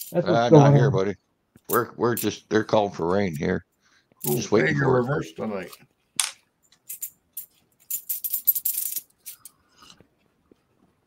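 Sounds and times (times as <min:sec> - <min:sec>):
small metal objects rattling: 0:00.0 - 0:00.2, 0:06.7 - 0:09.6.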